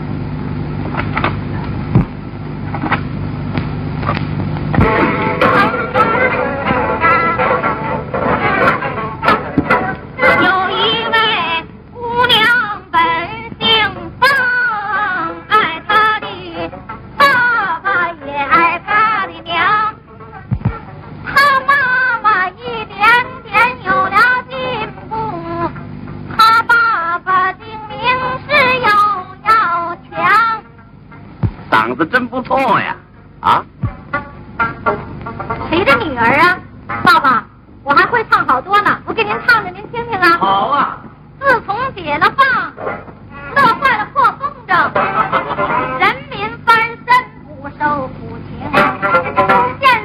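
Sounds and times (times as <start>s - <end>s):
plucked string instruments: 4.7s - 11.3s.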